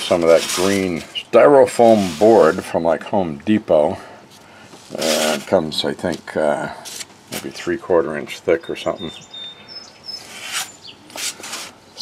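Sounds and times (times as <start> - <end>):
bird chirping: 8.1 - 11.2.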